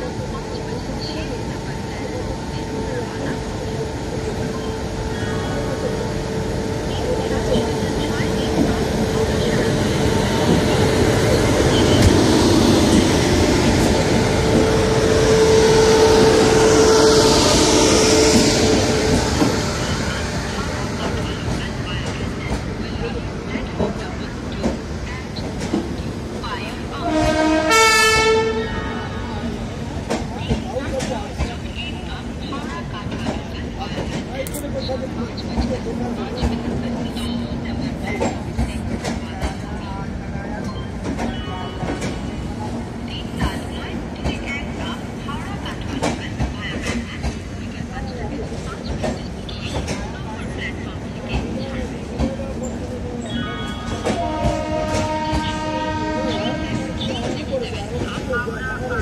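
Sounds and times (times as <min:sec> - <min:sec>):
train coaches rumbling past: 0:00.0 - 0:59.0
voices: 0:00.0 - 0:59.0
train horn: 0:14.8 - 0:19.0, 0:27.0 - 0:29.1, 0:54.0 - 0:57.1.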